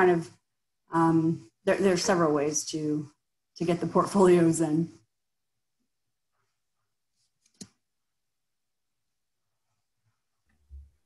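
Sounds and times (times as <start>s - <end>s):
computer mouse click: 7.4s - 7.8s.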